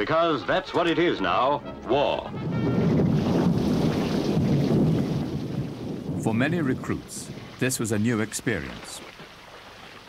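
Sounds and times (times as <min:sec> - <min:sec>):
ship engine and water rushing: 0:01.8 - 0:10.0.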